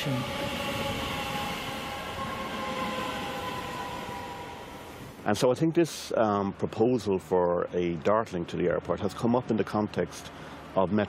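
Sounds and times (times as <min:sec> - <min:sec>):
electric train rolling past: 0:00.0 - 0:11.0.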